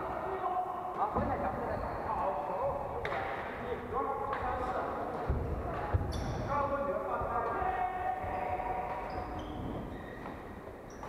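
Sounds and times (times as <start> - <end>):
voices chattering: 3.9 - 9.7
shoes squeaking on wooden floor: 5.2 - 11.0.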